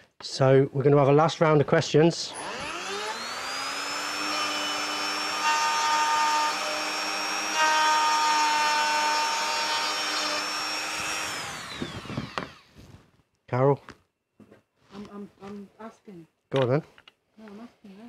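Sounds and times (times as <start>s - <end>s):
router cutting wood: 2.3s - 12.8s.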